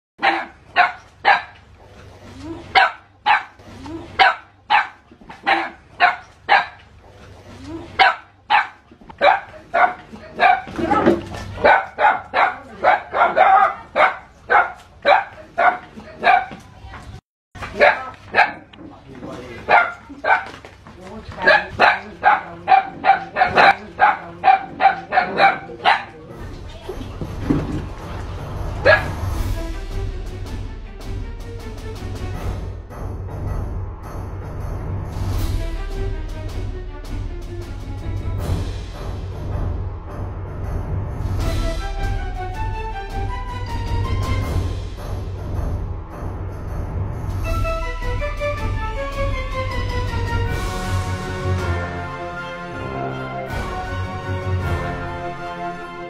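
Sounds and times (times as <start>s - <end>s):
dog barking: 0.2s - 1.6s, 2.7s - 3.6s, 4.2s - 6.8s, 8.0s - 11.0s, 11.6s - 16.6s, 17.7s - 18.7s, 19.7s - 20.6s, 21.4s - 26.2s, 28.8s - 29.1s.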